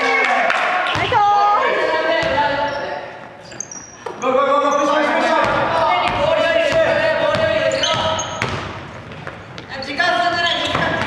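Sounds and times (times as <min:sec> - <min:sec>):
players calling out: 0:00.0 - 0:08.6
basketball bouncing on wooden floor: 0:05.4 - 0:11.0.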